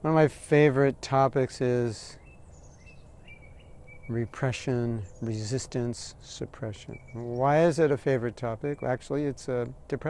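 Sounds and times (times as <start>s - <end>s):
faint outdoor background noise: 0.0s - 10.0s
bird chirping: 2.1s - 9.8s.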